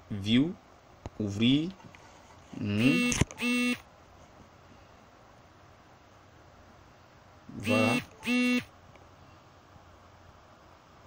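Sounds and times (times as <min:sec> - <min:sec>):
faint background hiss: 0:00.0 - 0:11.0
person speaking: 0:02.5 - 0:03.4, 0:07.5 - 0:08.4.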